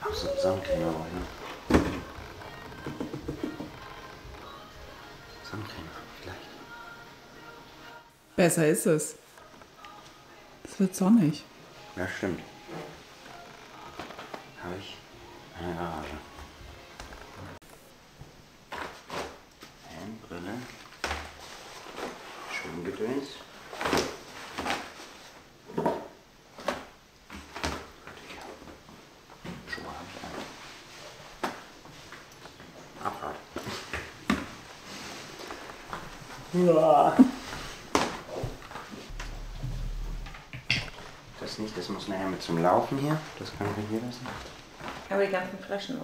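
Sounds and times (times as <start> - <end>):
people talking: 0.0 - 1.3
clothing rustling: 0.0 - 8.0, 12.0 - 25.6, 26.4 - 46.0.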